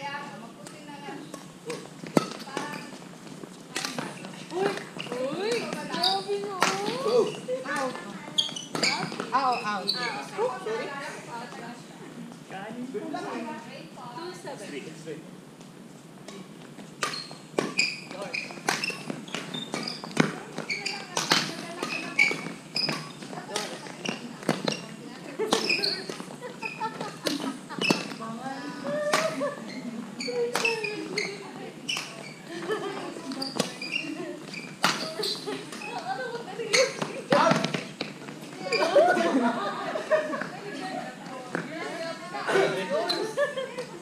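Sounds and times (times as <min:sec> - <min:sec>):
shoes squeaking on wooden floor: 0:00.2 - 0:13.5, 0:15.6 - 0:39.3, 0:40.3 - 0:44.0
rackets hitting shuttlecock: 0:03.8 - 0:05.8, 0:18.6 - 0:24.8, 0:34.7 - 0:35.2, 0:36.7 - 0:38.2.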